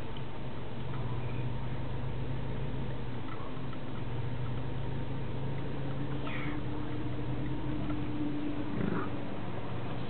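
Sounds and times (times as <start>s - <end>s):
car cabin hum while driving: 0.0s - 10.0s.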